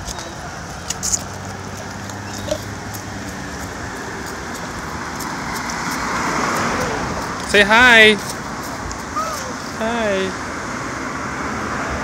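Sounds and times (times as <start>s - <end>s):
car tyre noise: 0.0s - 11.9s
traffic hum: 0.0s - 12.0s.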